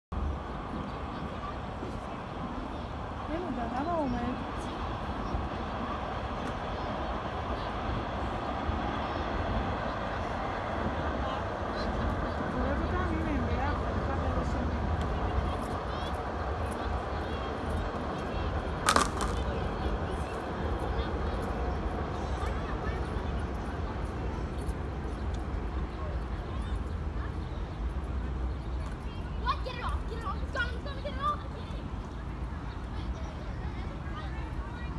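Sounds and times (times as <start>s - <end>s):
city noise: 0.1s - 34.9s
distant voices: 0.2s - 34.9s.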